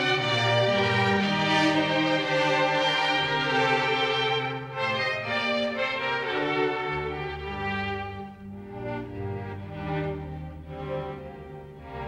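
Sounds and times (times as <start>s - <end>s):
low cello notes: 0.0s - 12.0s
orchestral bowed strings: 0.0s - 12.0s.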